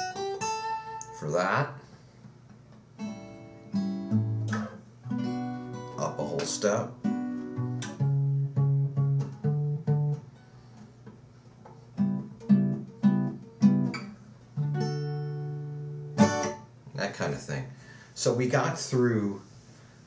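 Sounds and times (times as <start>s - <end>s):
acoustic guitar plucked notes: 0.0s - 1.8s, 3.0s - 11.2s, 11.8s - 16.8s
guitar strummed chord: 3.0s - 10.4s, 12.0s - 16.7s.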